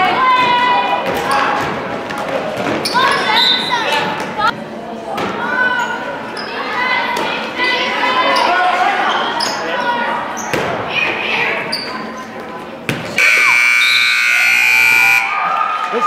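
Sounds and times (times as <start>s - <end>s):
crowd voices: 0.0s - 16.0s
scoreboard buzzer: 13.2s - 15.3s.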